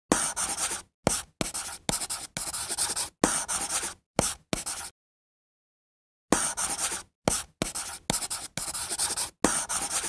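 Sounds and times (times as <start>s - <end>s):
chalk scratching on chalkboard: 0.1s - 4.9s, 6.4s - 10.0s
chalk tapping: 0.1s - 4.9s, 6.4s - 10.0s.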